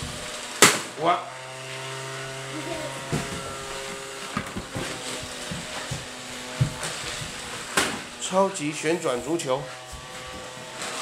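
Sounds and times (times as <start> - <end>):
small electric fan motor humming: 0.0 - 11.0.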